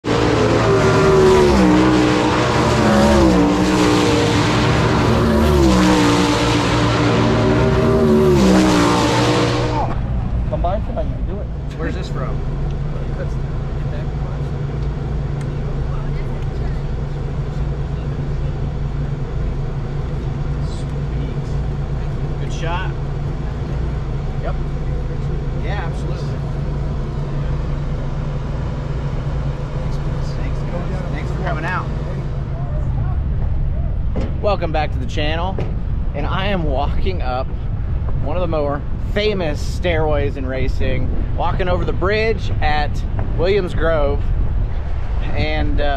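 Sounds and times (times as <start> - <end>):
race car engines: 0.0 - 45.9
steady low hum: 9.4 - 45.9.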